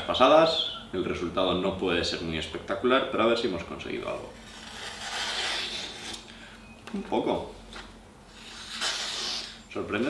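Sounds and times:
knife slicing paper: 4.5s - 6.2s, 8.4s - 9.6s.

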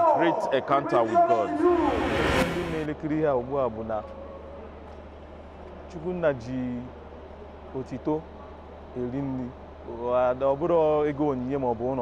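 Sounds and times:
man talking: 0.0s - 4.0s
short rush of noise: 1.4s - 2.9s.

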